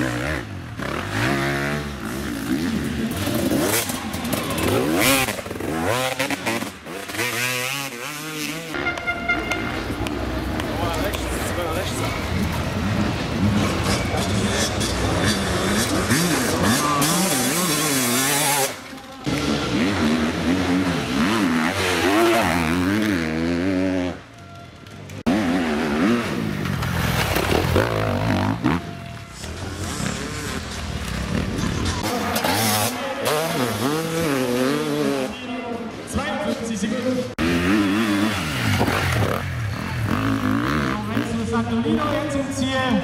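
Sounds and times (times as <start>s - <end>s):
motorcycle engines revving: 0.0s - 43.0s.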